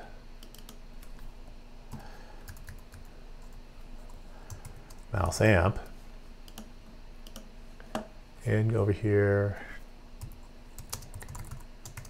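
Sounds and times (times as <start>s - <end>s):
typing on keyboard: 10.2s - 12.0s.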